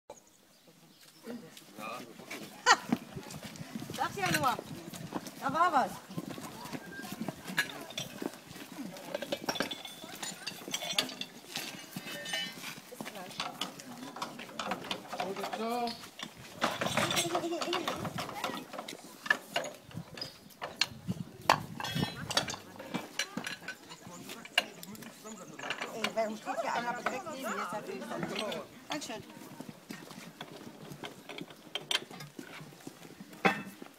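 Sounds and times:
voices calling: 0.6s - 32.3s.

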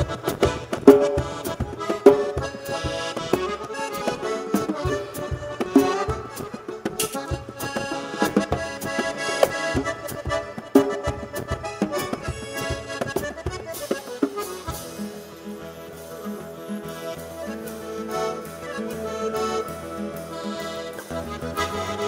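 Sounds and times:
drum and cymbal hits: 0.0s - 15.5s
accordion melody: 0.0s - 22.0s
guitarron: 0.0s - 22.0s.

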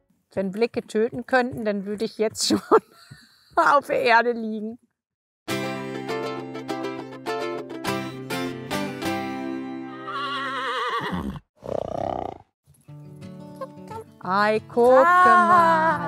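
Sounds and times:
horse whinny: 9.9s - 12.5s.

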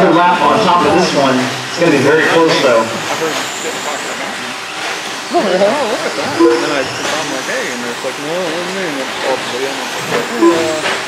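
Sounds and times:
people talking: 0.0s - 4.6s, 5.3s - 11.0s
rc truck motors and tyres hissing: 1.8s - 6.2s, 6.9s - 10.4s.

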